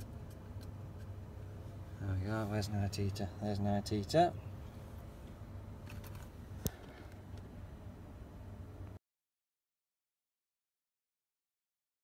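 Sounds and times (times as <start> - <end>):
truck cab hum: 0.0 - 9.0.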